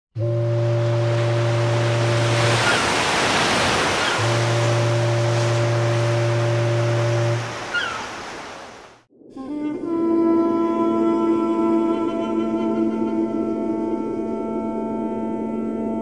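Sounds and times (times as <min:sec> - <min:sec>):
ship's horn blasts: 0:00.2 - 0:08.6, 0:09.2 - 0:16.0
surf rushing: 0:00.5 - 0:09.1.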